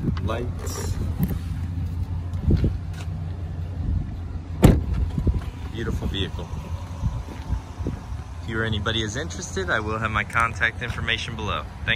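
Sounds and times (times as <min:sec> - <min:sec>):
steady low rumble: 0:00.0 - 0:11.9
car door thud: 0:04.6 - 0:05.4.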